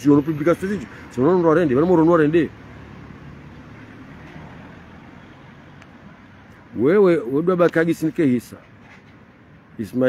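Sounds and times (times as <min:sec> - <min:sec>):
road traffic: 0:00.0 - 0:10.0.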